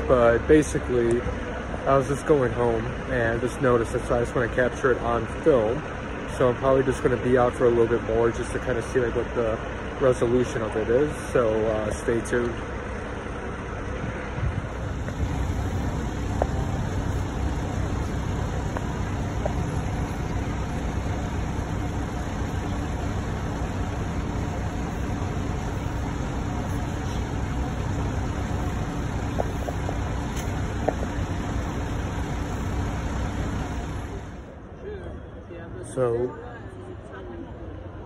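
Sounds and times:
faint steady hum: 0.0 - 34.7
low rumble of street traffic: 0.0 - 38.0.

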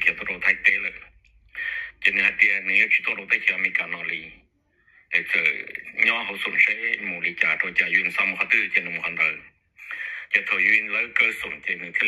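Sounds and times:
man talking: 0.0 - 4.4, 5.1 - 12.0.

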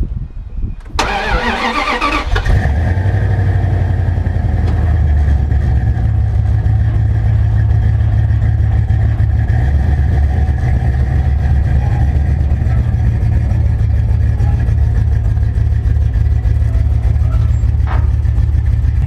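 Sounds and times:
truck engine starting and idling: 0.6 - 19.0.

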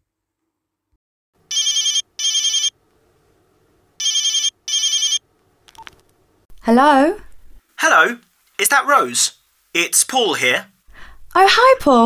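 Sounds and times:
telephone warbling rings: 1.5 - 2.7, 4.0 - 5.2.

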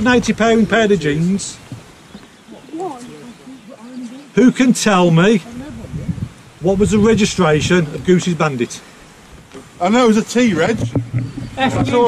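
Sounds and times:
quiet group talking: 0.0 - 12.0.

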